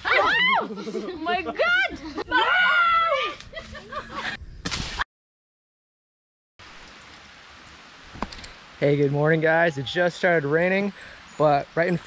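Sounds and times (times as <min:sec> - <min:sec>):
light rain falling: 0:06.6 - 0:12.0.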